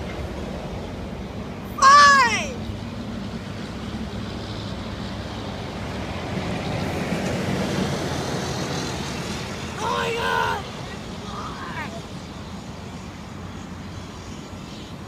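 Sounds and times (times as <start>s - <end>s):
road traffic noise: 0.0s - 15.0s
person calling out: 1.7s - 2.6s, 9.8s - 12.0s.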